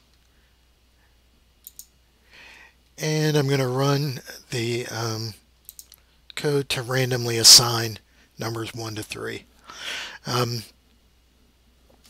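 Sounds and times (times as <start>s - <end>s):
computer mouse clicks: 1.6s - 1.9s, 5.6s - 6.0s.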